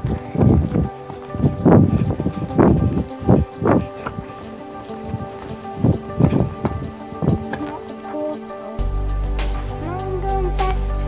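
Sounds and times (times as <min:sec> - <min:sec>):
steady droning tone: 0:00.0 - 0:11.0.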